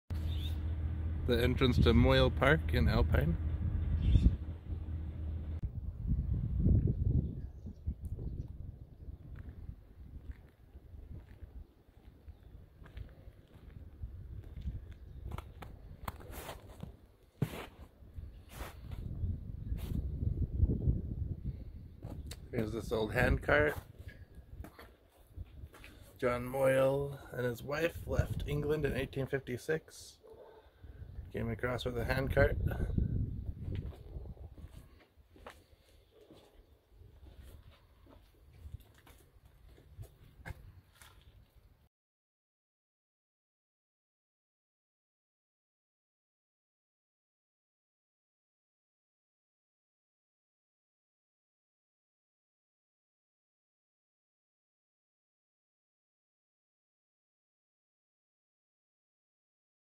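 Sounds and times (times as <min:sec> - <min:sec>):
steady low rumble: 0:00.1 - 0:11.6, 0:31.2 - 0:35.0
footsteps walking: 0:10.2 - 0:17.9, 0:33.6 - 0:41.6.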